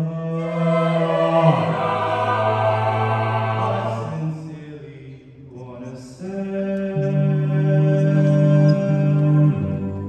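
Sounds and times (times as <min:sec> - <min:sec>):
vocal group singing a chord: 0:00.0 - 0:10.0.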